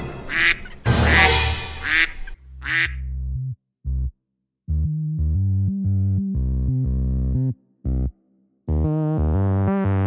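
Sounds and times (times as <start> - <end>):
music: 0.0 - 2.2, 3.0 - 10.0
duck quacking: 0.0 - 3.1.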